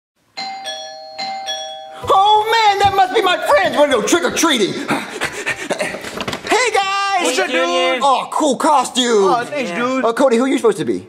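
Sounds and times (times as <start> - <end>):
doorbell chime ding-dong: 0.4 - 2.1.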